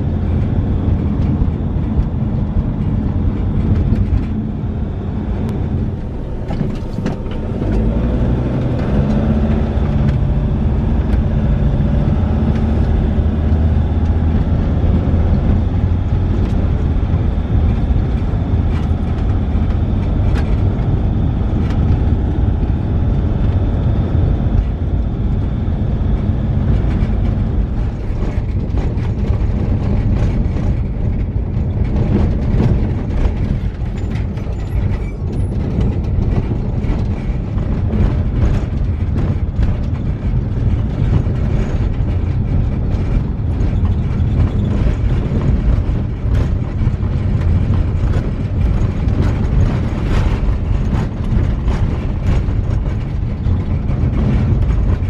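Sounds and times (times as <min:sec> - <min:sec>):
vehicle engine and road noise: 0:00.0 - 0:55.0.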